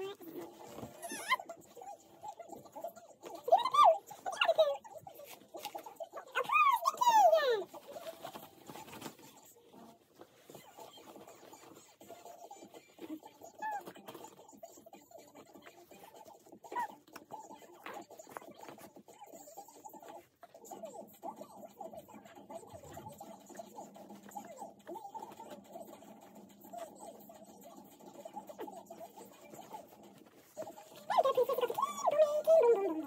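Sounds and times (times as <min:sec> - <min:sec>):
nappy rustling: 0:00.1 - 0:33.0
faint small squeaks: 0:00.6 - 0:02.0.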